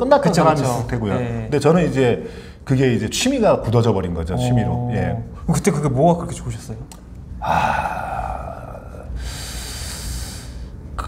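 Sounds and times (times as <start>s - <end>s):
man breathing out: 7.4s - 10.8s.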